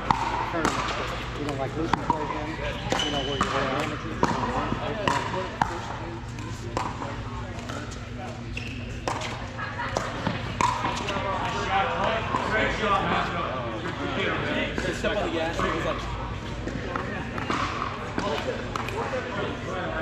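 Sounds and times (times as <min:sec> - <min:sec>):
chatter in a hall: 0:00.0 - 0:20.0.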